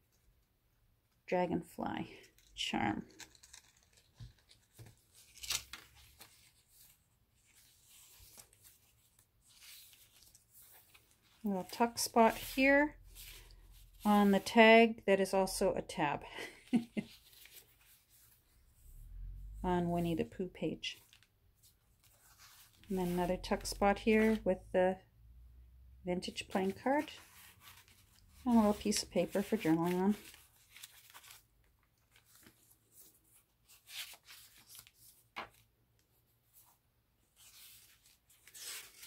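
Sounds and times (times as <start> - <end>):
paper rustling: 2.3 - 14.6, 16.5 - 18.6, 21.0 - 24.5, 26.4 - 39.0.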